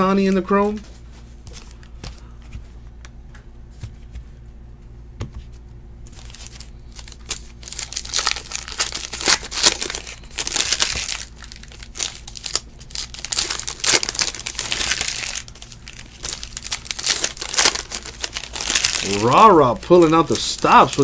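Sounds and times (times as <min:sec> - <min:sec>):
foil wrapper crinkling and tearing: 0:06.1 - 0:21.0.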